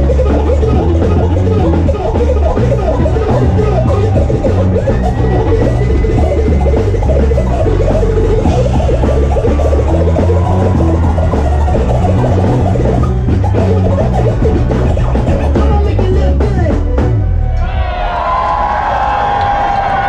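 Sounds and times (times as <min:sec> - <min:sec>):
live band playing hip-hop groove: 0:00.0 - 0:17.4.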